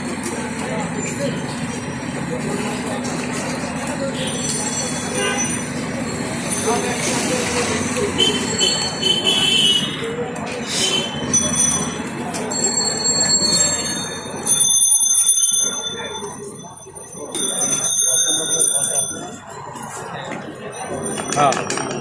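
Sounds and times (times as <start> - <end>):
background voices and chatter: 0.0 - 22.0
high-pitched bells ringing: 0.2 - 9.1, 11.2 - 22.0.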